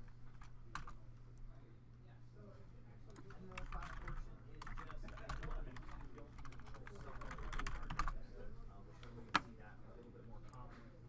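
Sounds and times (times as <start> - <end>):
typing on computer keyboard: 3.1 - 8.2.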